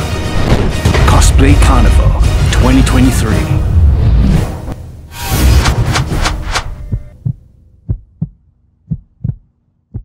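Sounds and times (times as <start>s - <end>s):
trailer music hits: 0.0s - 7.2s
heartbeat thuds: 6.7s - 10.0s.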